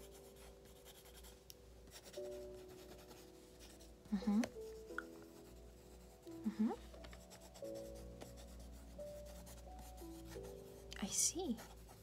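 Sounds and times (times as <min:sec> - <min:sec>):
pen scratching on paper: 0:00.0 - 0:06.3, 0:07.1 - 0:12.0
soft background music: 0:00.0 - 0:12.0.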